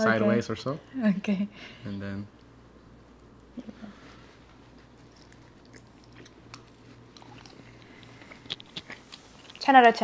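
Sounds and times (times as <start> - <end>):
person chewing: 4.7 - 9.6.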